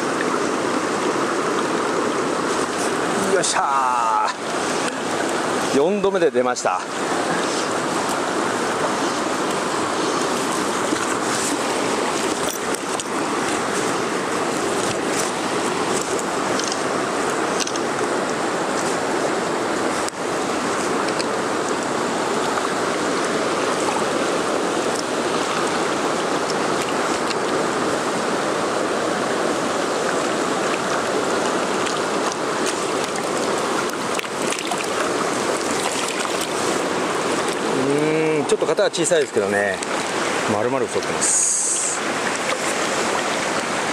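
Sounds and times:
stream rushing over stones: 0:00.0 - 0:43.9.

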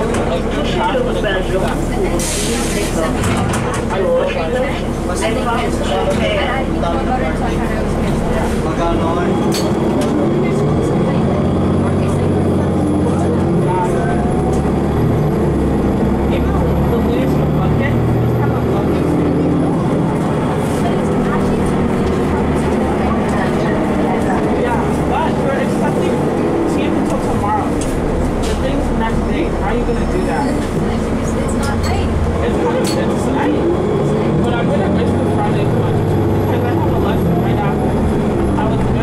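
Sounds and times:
bus engine accelerating: 0:00.0 - 0:39.0
road and cabin noise: 0:00.0 - 0:39.0.

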